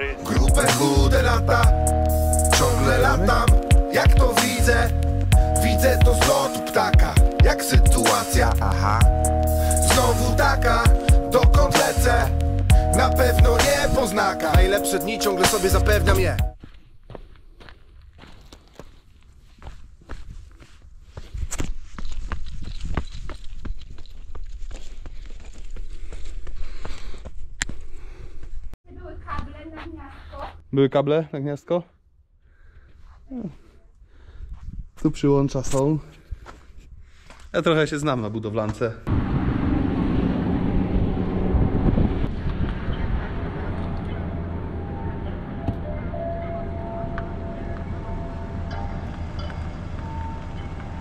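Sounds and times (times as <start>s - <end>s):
footsteps on sand: 16.6s - 28.7s, 36.1s - 37.6s
wind buffeting microphone: 39.2s - 46.1s.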